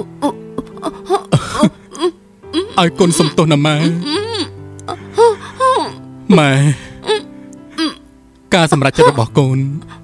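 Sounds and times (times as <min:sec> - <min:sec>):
person crying: 0:00.0 - 0:08.0, 0:08.7 - 0:10.0
soft background music: 0:00.0 - 0:10.0.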